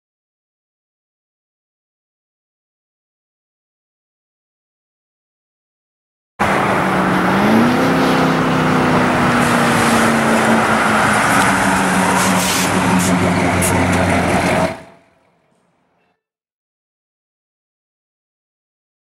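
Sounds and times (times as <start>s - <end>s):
car engine driving past: 6.4s - 15.9s.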